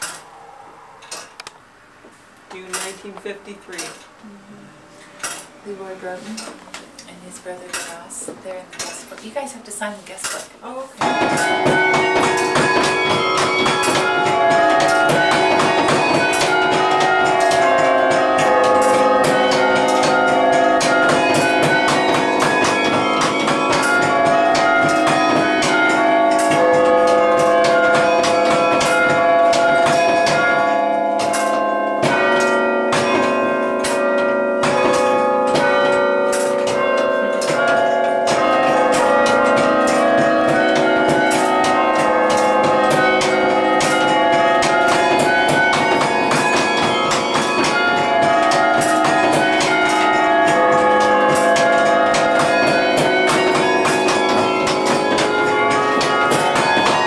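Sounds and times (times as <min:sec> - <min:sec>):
wooden baton keys clacking: 0:05.0 - 0:57.0
carillon bells playing melody: 0:11.0 - 0:57.0.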